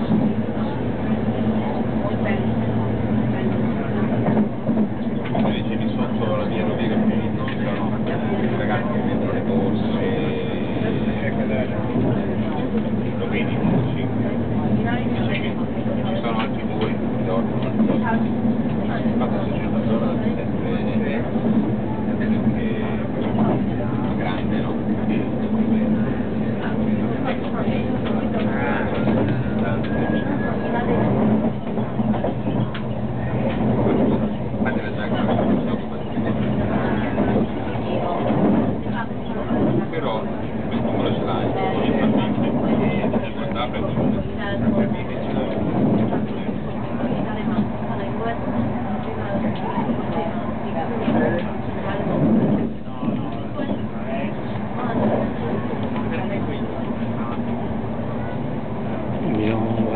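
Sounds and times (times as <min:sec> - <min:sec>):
passenger chatter: 0:00.0 - 0:59.9
train running hum: 0:00.0 - 0:59.9.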